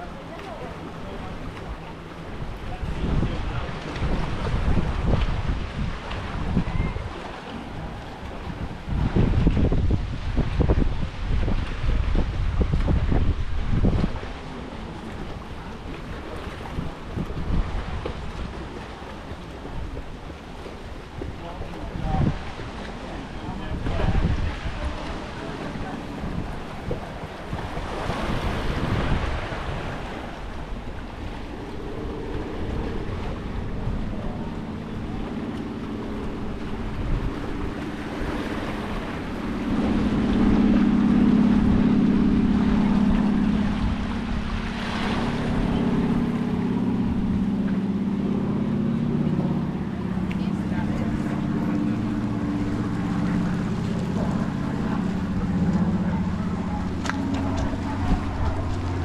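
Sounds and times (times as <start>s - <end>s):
distant voices: 0.0s - 59.0s
low engine-like drone: 0.0s - 59.0s
waves washing against rocks: 0.0s - 59.0s
wind buffeting microphone: 0.0s - 59.0s.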